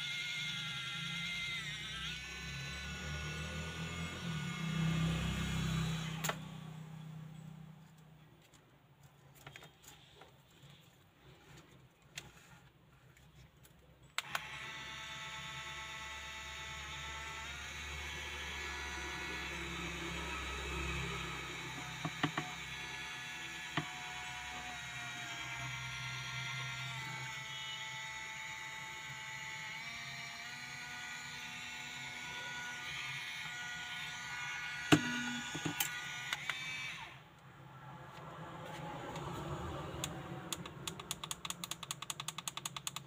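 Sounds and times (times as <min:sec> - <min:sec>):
small motor whining: 0:00.0 - 0:07.2, 0:14.2 - 0:37.3
sharp clicks: 0:40.0 - 0:43.0.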